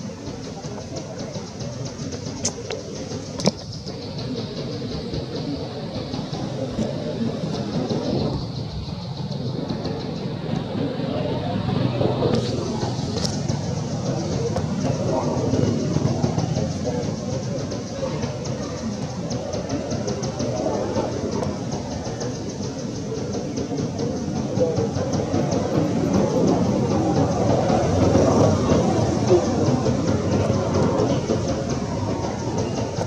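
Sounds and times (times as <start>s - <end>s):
outdoor background noise: 0.0s - 33.0s
voices murmuring: 0.0s - 33.0s.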